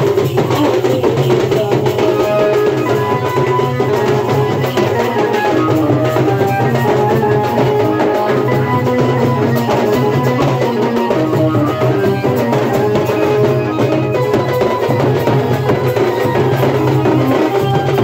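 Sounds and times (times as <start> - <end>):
band melody line: 0.0 - 18.0
barrel drum and drums beating: 0.0 - 18.0.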